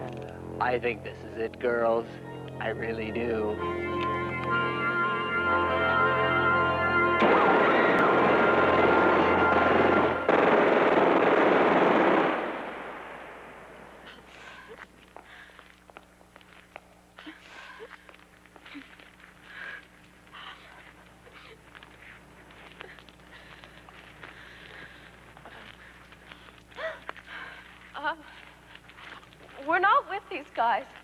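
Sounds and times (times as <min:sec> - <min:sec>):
automatic gunfire: 0:10.3 - 0:13.0
faint clicks and movements: 0:14.0 - 0:31.0.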